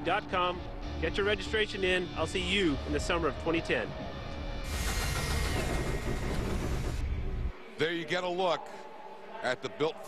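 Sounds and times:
large engine running: 4.7 - 7.1.

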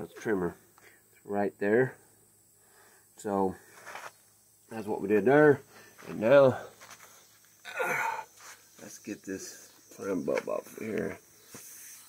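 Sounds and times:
man sighing: 7.6 - 8.3.

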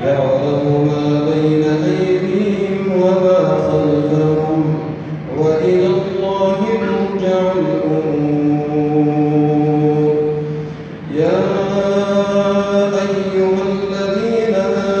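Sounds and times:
man chanting melodic recitation: 0.0 - 15.0.

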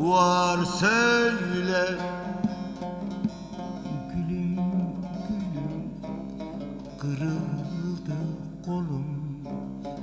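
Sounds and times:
person singing folk song: 0.0 - 10.0
plucked long-necked lute: 0.0 - 10.0.

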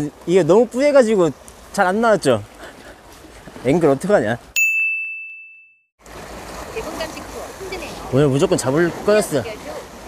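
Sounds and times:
wind: 0.0 - 10.0
bell-like ding: 4.6 - 5.9
surf: 6.0 - 10.0.

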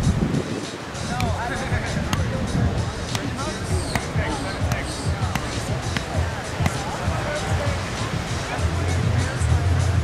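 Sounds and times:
volleyball being struck: 3.9 - 7.0.

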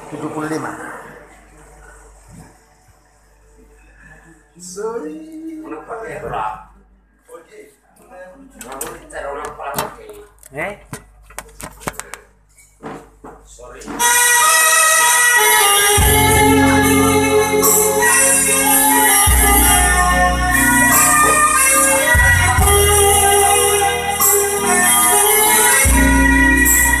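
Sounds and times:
room hum: 0.0 - 14.0
electronic chord music: 14.0 - 27.0.

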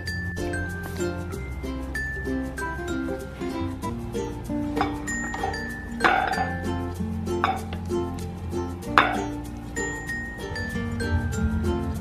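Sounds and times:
light background music: 0.0 - 12.0.

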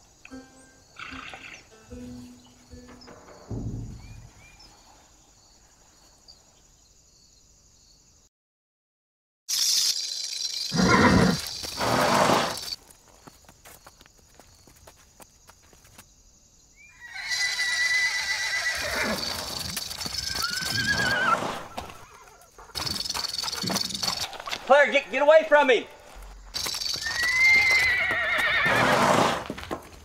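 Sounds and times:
horse whinnying: 1.0 - 1.7, 10.7 - 12.6, 17.0 - 22.5, 27.0 - 29.5.

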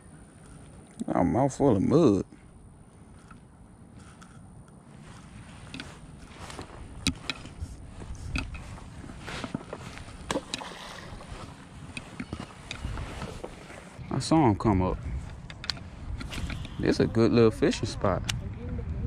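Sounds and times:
wind rumbling on microphone: 2.6 - 19.0
fishing reel clicks and rustles: 3.1 - 14.0, 15.2 - 17.0.

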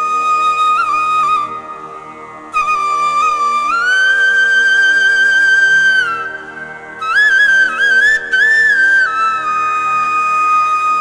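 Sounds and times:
flute playing slow melody: 0.0 - 11.0
steady drone: 0.0 - 11.0.

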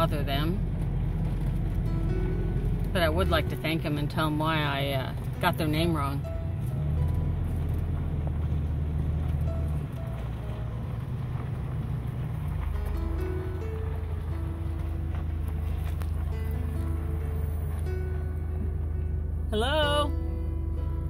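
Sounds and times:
background music melody: 0.0 - 21.0
vehicle engine and road noise: 0.0 - 21.0.

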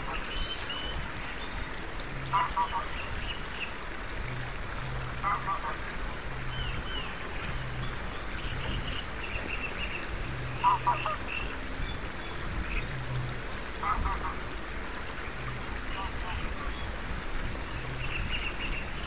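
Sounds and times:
steady background noise: 0.0 - 19.0.

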